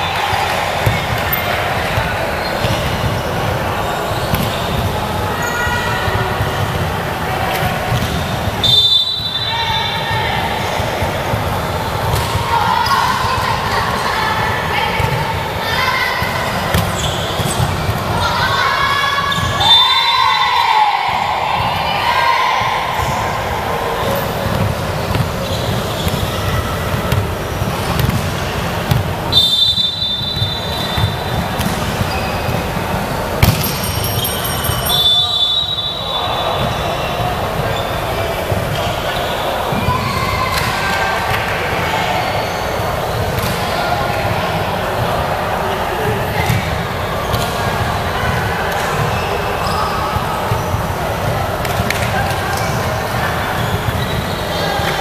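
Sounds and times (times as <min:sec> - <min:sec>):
sneakers squeaking on floor: 0:00.0 - 0:20.4, 0:21.6 - 0:41.4, 0:42.1 - 0:43.8, 0:46.2 - 0:51.0, 0:51.7 - 0:55.0
echoing hall chatter: 0:00.0 - 0:55.0
players calling: 0:00.0 - 0:55.0
volleyball hits: 0:00.1 - 0:05.3, 0:16.2 - 0:18.3, 0:22.6 - 0:37.7, 0:43.3 - 0:44.4.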